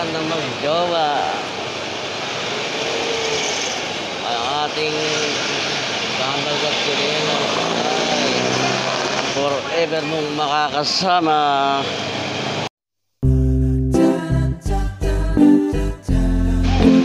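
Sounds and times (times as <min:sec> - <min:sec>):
people talking: 0:00.0 - 0:01.5, 0:04.2 - 0:05.4, 0:06.2 - 0:08.8, 0:09.4 - 0:11.9
motorcycles passing: 0:00.0 - 0:12.7
street traffic: 0:00.0 - 0:12.7
truck passing close: 0:01.1 - 0:09.9.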